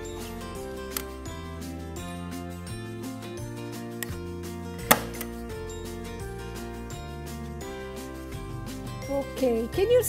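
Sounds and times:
background music: 0:00.0 - 0:10.0
stapler snapping shut: 0:04.8 - 0:05.4.

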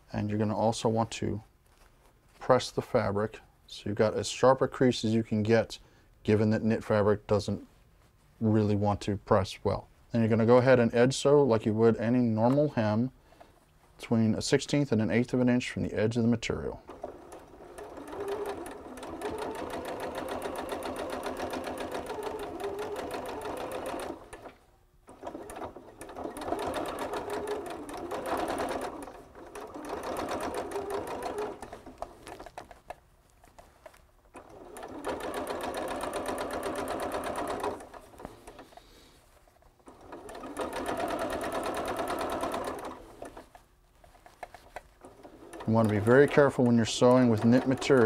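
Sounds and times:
electric sewing machine stitching: 0:16.9 - 0:32.7, 0:34.3 - 0:38.9, 0:39.8 - 0:43.5, 0:45.0 - 0:48.0.

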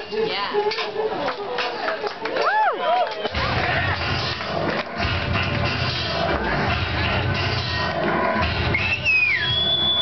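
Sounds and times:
background music: 0:03.3 - 0:10.0
person whistling: 0:08.7 - 0:10.0.

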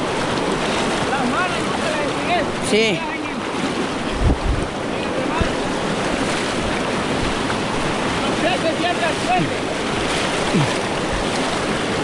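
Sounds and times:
river rapids rushing: 0:00.0 - 0:12.0
low thumps on microphone: 0:04.1 - 0:04.7.

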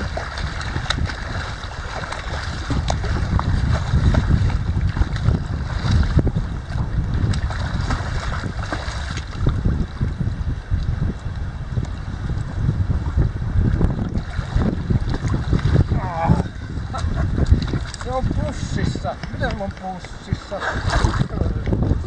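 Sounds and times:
choppy sea water: 0:00.0 - 0:22.0
wind buffeting microphone: 0:00.0 - 0:22.0.

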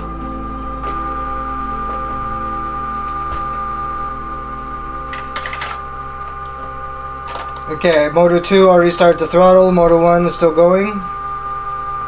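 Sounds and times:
electric motors whining: 0:00.0 - 0:12.0
low hum: 0:00.0 - 0:12.0.

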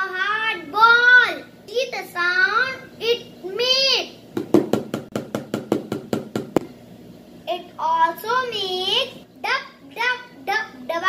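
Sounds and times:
stick tapping plastic tub drum: 0:04.4 - 0:06.7.

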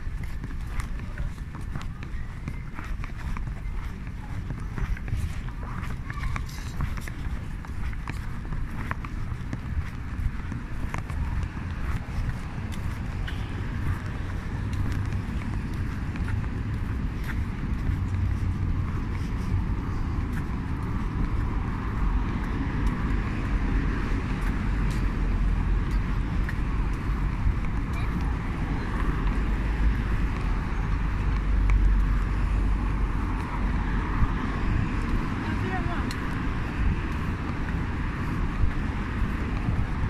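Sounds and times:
road traffic rumble: 0:00.0 - 0:40.0.

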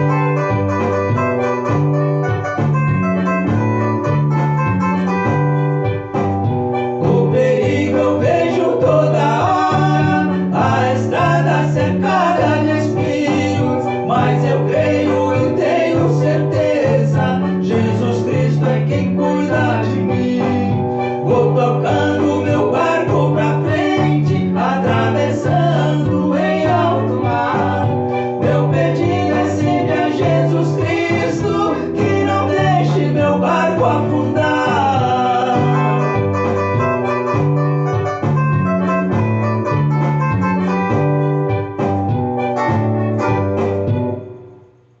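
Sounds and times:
electronic keyboard: 0:00.0 - 0:45.0
men singing: 0:07.0 - 0:36.3.

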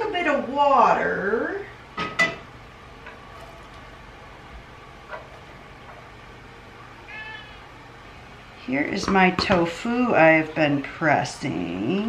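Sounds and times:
cat meowing: 0:07.1 - 0:07.7.

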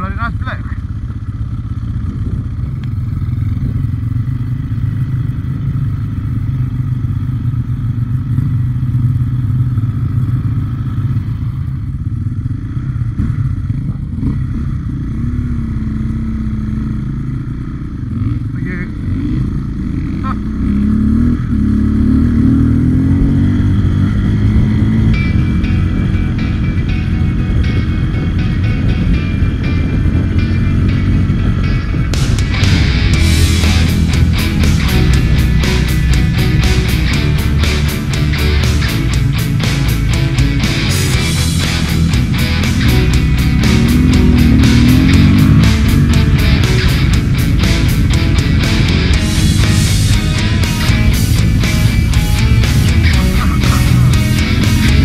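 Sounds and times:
motorcycle engine revving: 0:00.0 - 0:55.0
rock music: 0:22.1 - 0:55.0.

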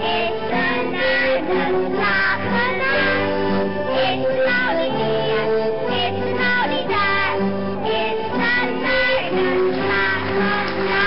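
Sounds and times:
children singing: 0:00.0 - 0:11.0
instrumental accompaniment: 0:00.0 - 0:11.0.

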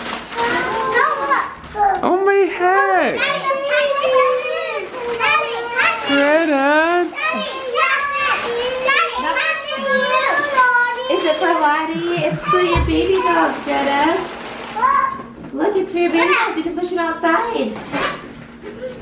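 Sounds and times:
young children talking and calling: 0:00.3 - 0:02.2, 0:02.8 - 0:06.4, 0:07.0 - 0:13.8, 0:14.6 - 0:15.5, 0:16.1 - 0:16.8.

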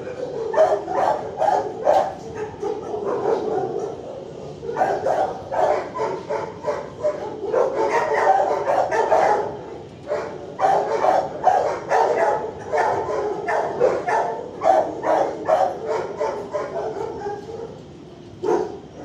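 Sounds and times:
dogs barking: 0:00.0 - 0:19.0.

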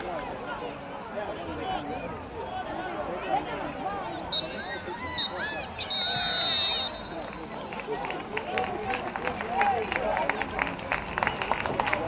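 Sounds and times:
referee's whistle: 0:04.3 - 0:07.3.

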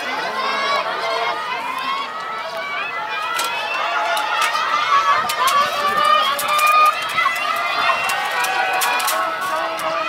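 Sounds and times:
spectators shouting encouragement: 0:00.0 - 0:10.0.

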